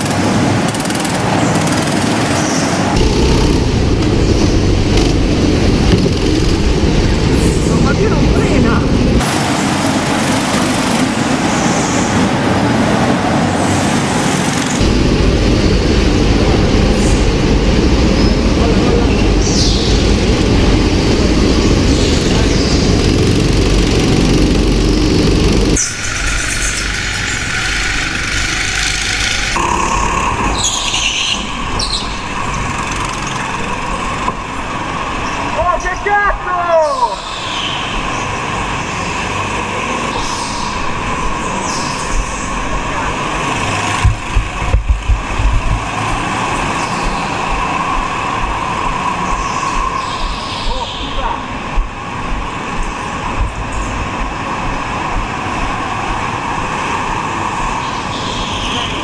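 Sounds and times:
go-kart engine: 0.0s - 35.9s, 37.2s - 59.0s.

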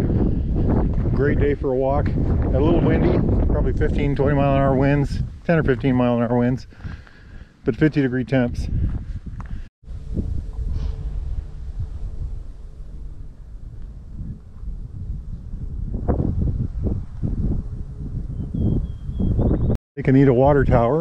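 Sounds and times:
wind buffeting microphone: 0.0s - 7.6s, 8.3s - 21.0s.

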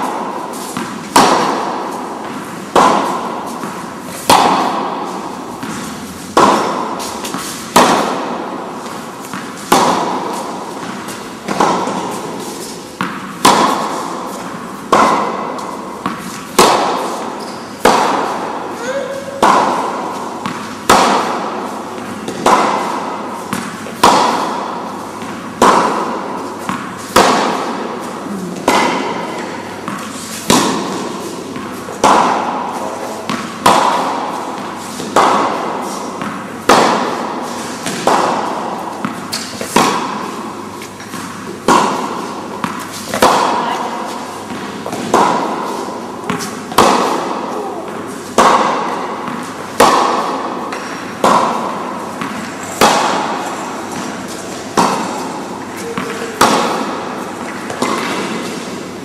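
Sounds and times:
tennis ball bounces: 0.0s - 59.0s
tennis balls struck by rackets: 0.0s - 59.0s.

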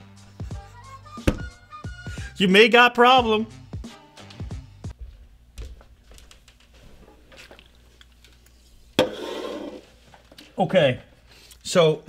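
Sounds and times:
faint background music: 0.0s - 5.7s.

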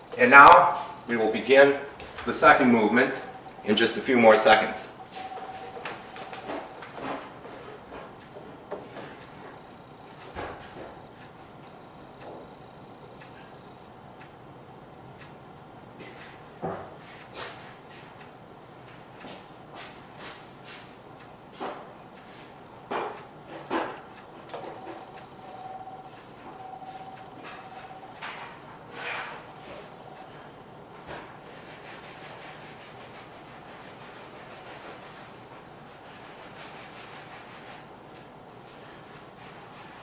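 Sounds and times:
faint steady whine: 0.0s - 40.0s.

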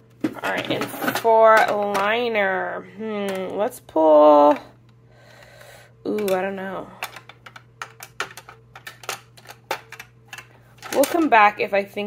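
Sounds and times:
low steady hum: 0.0s - 12.0s
pencils clicking against plastic: 0.4s - 2.3s, 6.1s - 11.4s.

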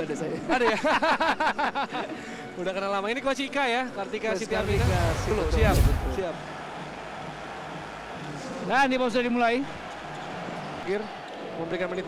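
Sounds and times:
faint arena background noise: 0.0s - 12.0s.

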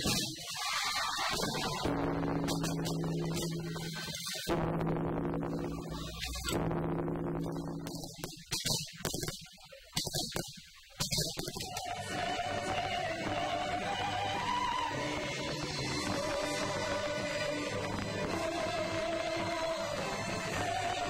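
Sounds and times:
firework bangs: 0.0s - 4.7s
woman singing: 11.7s - 21.0s.

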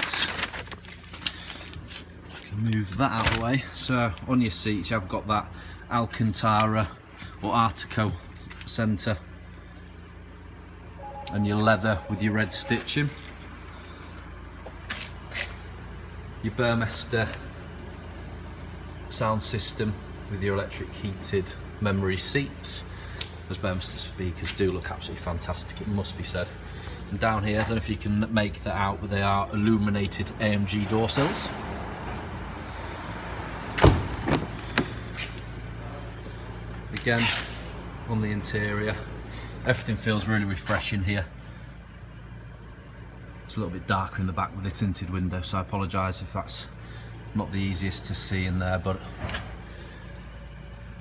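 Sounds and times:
room hum: 5.6s - 30.6s
car door shutting: 33.8s - 35.0s.

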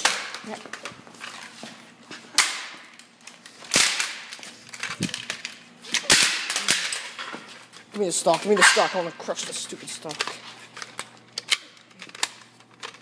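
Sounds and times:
plastic rifle being smashed: 3.7s - 5.3s, 5.9s - 7.1s.

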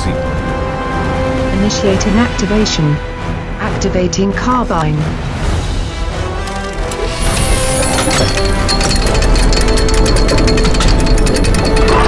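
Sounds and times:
mechanical clatter of shifting plates: 6.8s - 12.0s.

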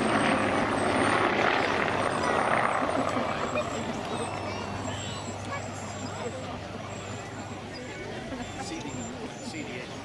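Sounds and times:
aircraft engine drone overhead: 0.0s - 10.0s
spectators chatting: 0.0s - 10.0s.

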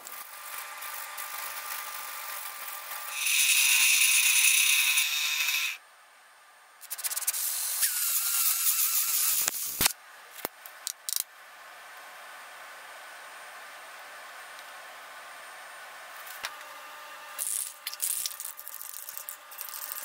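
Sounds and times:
mechanical rattle: 17.4s - 20.0s.

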